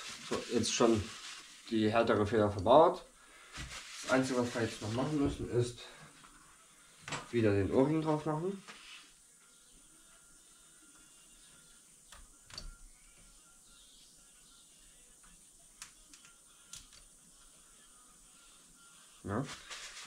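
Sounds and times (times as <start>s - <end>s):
faint clicks of small parts: 15.2s - 17.1s.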